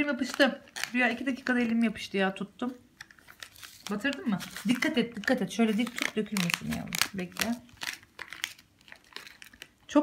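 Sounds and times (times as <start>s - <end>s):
paper sachet crinkling: 0.0s - 2.2s, 3.0s - 9.8s
popping candy crackles: 0.0s - 2.2s, 3.0s - 10.0s.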